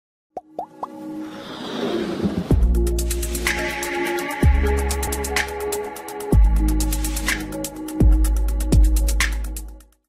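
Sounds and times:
rising-pitch plops: 0.4 - 1.0
electronic music build: 0.4 - 9.8.

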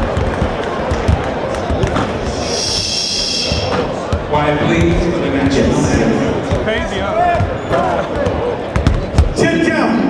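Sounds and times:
basketball bouncing on gym floor: 0.0 - 2.3, 3.5 - 9.4
crowd chatter and shouts: 0.0 - 10.0.

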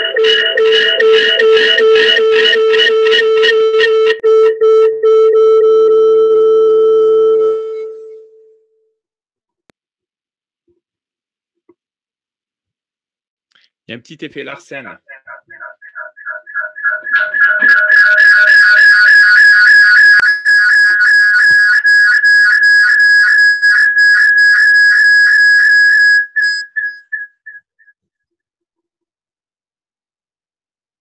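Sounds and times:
pulsing audio feedback howl: 0.0 - 3.5, 15.0 - 21.4.

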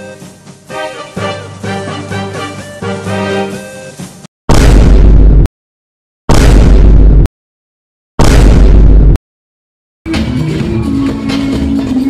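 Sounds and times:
gas cannon blasts: 4.5 - 5.4, 6.3 - 7.2, 8.2 - 9.2.

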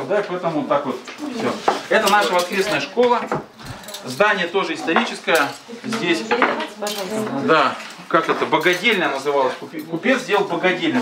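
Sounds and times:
spoons clinking on bowls: 1.9 - 2.9, 6.3 - 7.2, 8.5 - 9.2.

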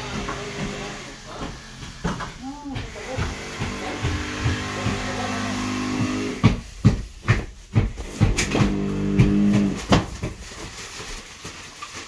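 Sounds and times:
power tool motor humming: 0.0 - 6.5, 8.0 - 9.9
sharp loud knocks: 1.6 - 10.4.

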